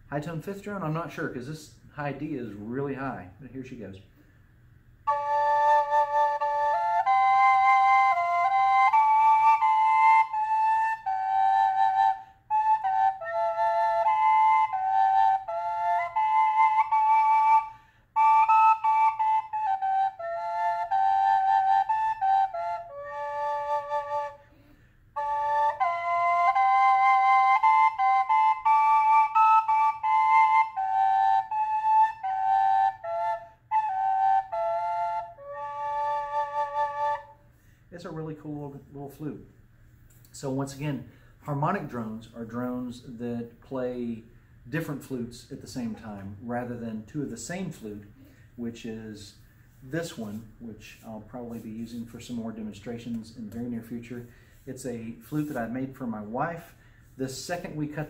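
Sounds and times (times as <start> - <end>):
drone flute melody: 5.0 - 38.3.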